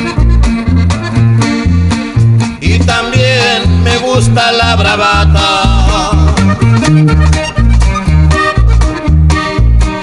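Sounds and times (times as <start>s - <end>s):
accordion: 0.0s - 10.0s
bass: 0.0s - 10.0s
guitar chords: 0.0s - 10.0s.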